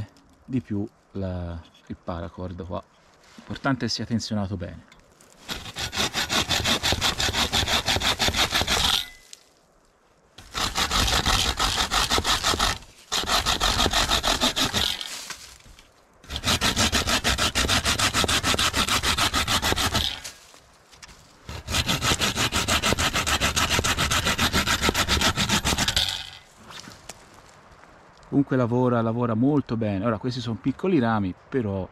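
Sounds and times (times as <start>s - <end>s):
saw cutting branches: 5.4s - 9.4s, 10.4s - 20.6s, 21.5s - 26.9s.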